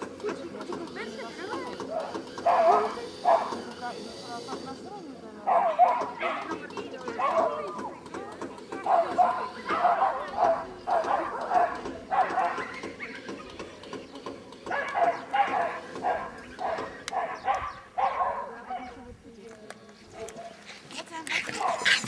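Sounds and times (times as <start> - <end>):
dog barking: 1.8 - 3.6, 5.5 - 7.9, 8.8 - 13.3, 14.7 - 19.0, 20.1 - 20.7, 21.5 - 22.0.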